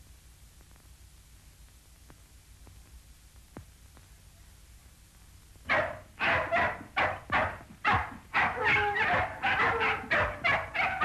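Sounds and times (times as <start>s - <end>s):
dog barking: 5.7s - 11.0s.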